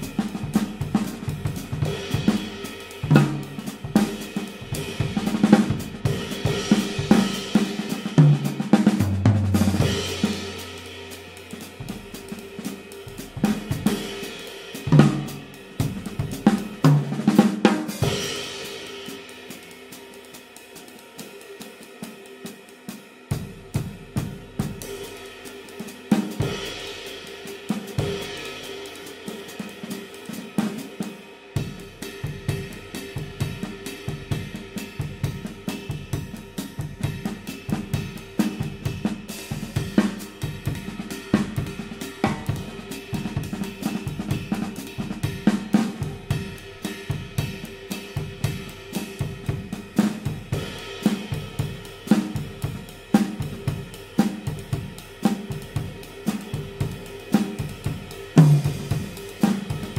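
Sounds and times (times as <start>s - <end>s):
snare drum: 0.0s - 10.8s, 14.7s - 19.2s, 32.3s - 59.9s
ride cymbal played with stick: 0.0s - 59.9s
bass drum: 33.6s - 59.9s.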